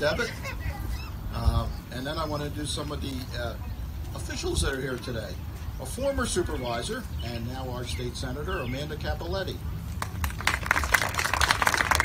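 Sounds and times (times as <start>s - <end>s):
small crowd applauding: 10.0s - 12.0s.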